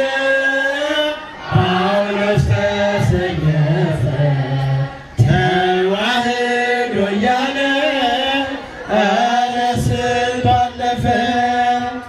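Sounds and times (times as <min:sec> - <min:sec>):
choir singing a hymn unaccompanied: 0:00.0 - 0:12.0.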